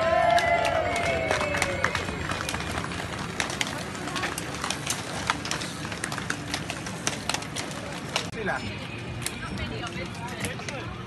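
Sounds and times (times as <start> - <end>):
crowd voices: 0.0 - 11.0
cycling shoes clicking into pedals: 0.0 - 11.0.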